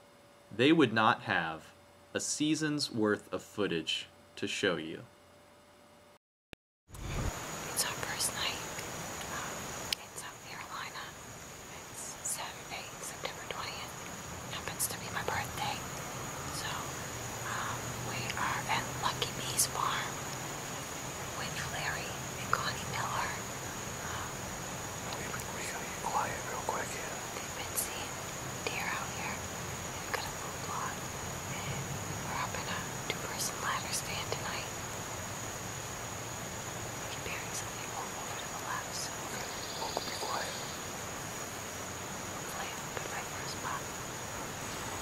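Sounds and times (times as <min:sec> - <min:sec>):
faint high-pitched whine: 0:00.0 - 0:06.2, 0:07.0 - 0:45.0
woman whispering: 0:07.7 - 0:15.9, 0:16.5 - 0:20.2, 0:21.3 - 0:24.4, 0:25.1 - 0:34.8, 0:37.1 - 0:40.7, 0:42.4 - 0:44.0.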